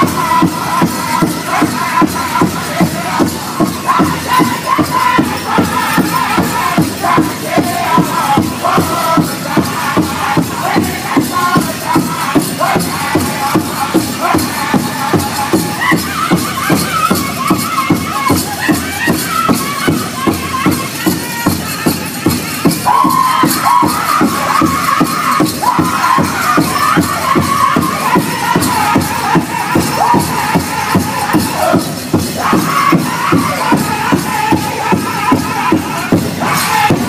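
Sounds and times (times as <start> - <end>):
large drum steady beat: 0.0 - 37.0
men singing together: 0.0 - 37.0.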